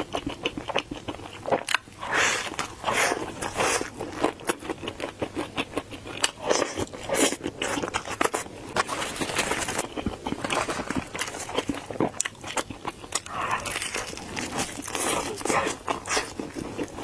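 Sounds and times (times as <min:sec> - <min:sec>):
chewing crispy fried chicken: 0:00.0 - 0:17.0.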